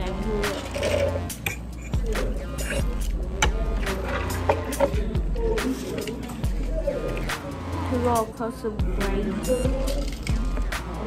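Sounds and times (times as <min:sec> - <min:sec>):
background music: 0:00.0 - 0:11.0
steady low hum: 0:00.0 - 0:11.0.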